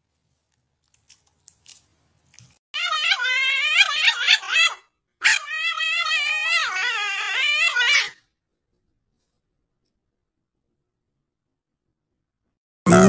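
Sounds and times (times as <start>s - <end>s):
dog whining: 2.8s - 8.2s.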